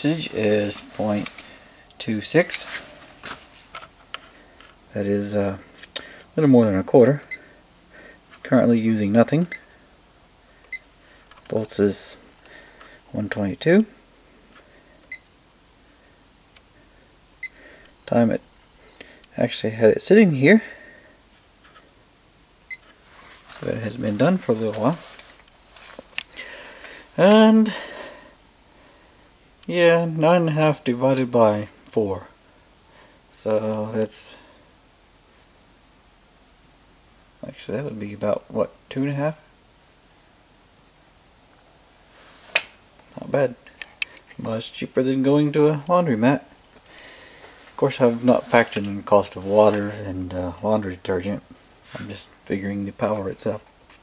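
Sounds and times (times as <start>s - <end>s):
faint hiss: 0.0s - 54.0s.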